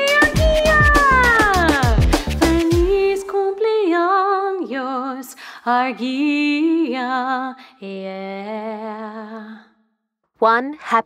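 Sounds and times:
upbeat birthday instrumental with drums: 0.0s - 3.1s.

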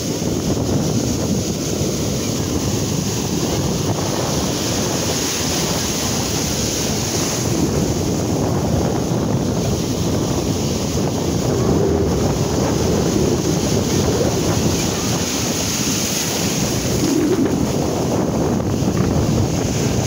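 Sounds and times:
ocean surf breaking: 0.0s - 20.0s
wind buffeting microphone: 0.0s - 20.0s.

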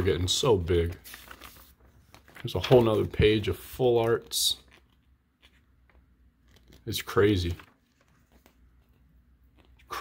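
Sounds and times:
paper pages being turned: 0.0s - 9.9s.

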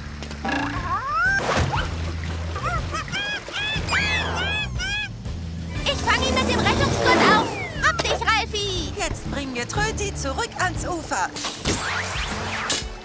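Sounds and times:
cartoon music with bass line: 0.4s - 12.9s
cartoon rising glide: 3.5s - 5.1s, 6.0s - 8.0s
squeaky cartoon chirps: 3.5s - 5.1s.

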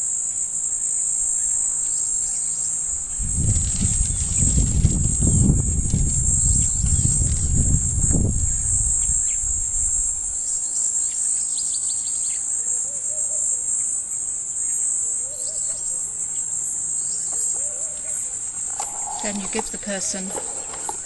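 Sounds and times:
insect chorus trilling: 0.0s - 21.0s
faint short calls: 17.6s - 21.0s.

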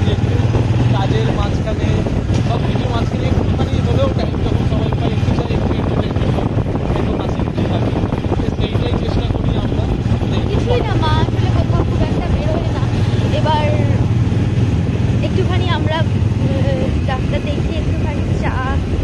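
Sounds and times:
vehicle noise: 0.0s - 19.0s
voices talking: 0.0s - 19.0s
wind rumble: 0.0s - 19.0s.

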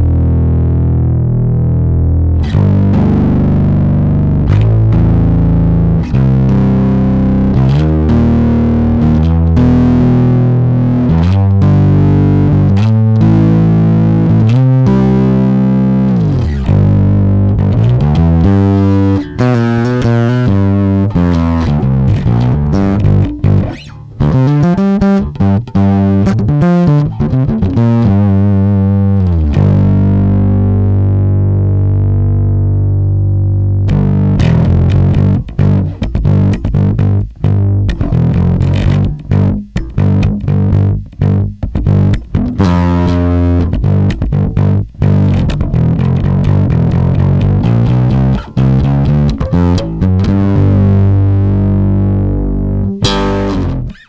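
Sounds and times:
overdriven electric bass riff: 0.0s - 54.0s.

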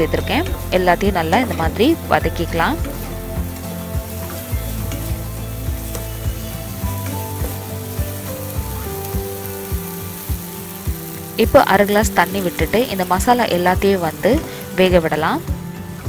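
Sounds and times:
masala sizzling in a pan: 0.0s - 16.0s
soft background music: 0.0s - 16.0s.

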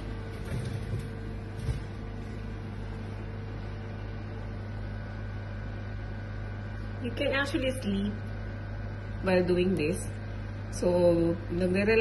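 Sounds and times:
steady device hum: 0.0s - 12.0s.

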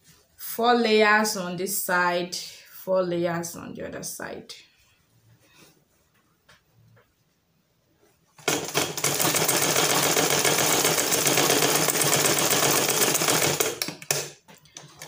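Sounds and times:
sewing machine clatter: 8.4s - 14.2s.

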